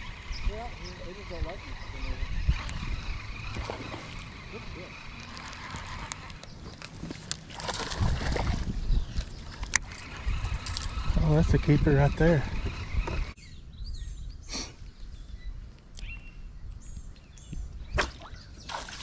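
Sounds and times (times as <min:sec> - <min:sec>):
wind on microphone: 0:00.0 - 0:06.7, 0:07.6 - 0:19.0
water lapping against boat hull: 0:03.3 - 0:04.6.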